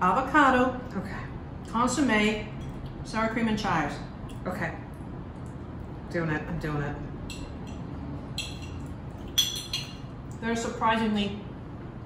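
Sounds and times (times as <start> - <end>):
cutlery clinking against a dish: 8.4 - 10.1.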